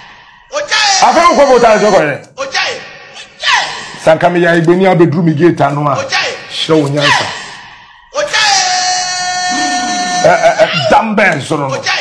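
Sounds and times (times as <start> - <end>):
man speaking: 0.5 - 7.4, 8.1 - 12.0.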